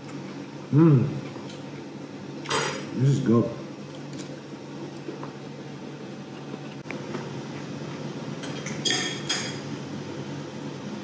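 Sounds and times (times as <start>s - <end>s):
low room hum: 0.0s - 11.0s
fork clinking on plate: 8.4s - 9.6s.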